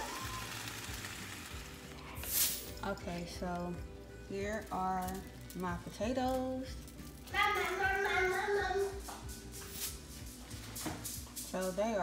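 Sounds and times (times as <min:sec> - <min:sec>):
potatoes sizzling in a skillet: 0:00.0 - 0:02.7
background music: 0:00.0 - 0:12.0.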